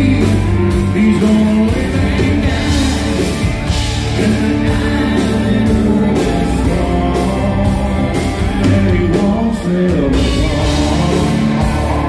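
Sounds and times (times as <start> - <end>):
bass guitar: 0.0 - 12.0
drum kit with cymbals: 0.0 - 12.0
electric guitars: 0.0 - 12.0.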